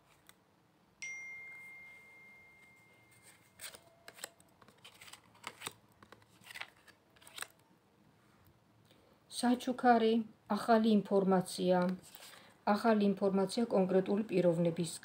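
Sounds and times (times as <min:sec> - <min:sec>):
bell-like ringing tone: 0:01.0 - 0:04.1
cards snapping and flicking: 0:03.6 - 0:07.6.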